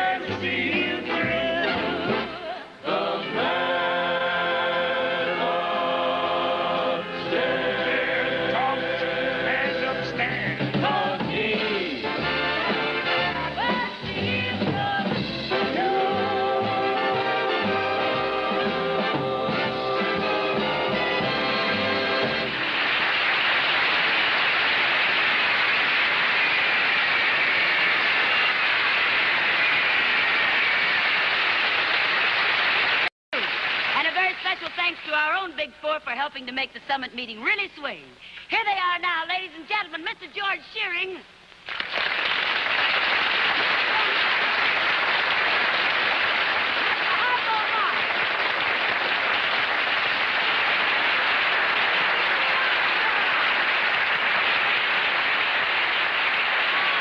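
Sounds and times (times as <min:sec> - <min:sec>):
chorus singing held notes: 0:00.0 - 0:22.1
audience applauding: 0:17.0 - 0:34.7, 0:41.6 - 0:57.0.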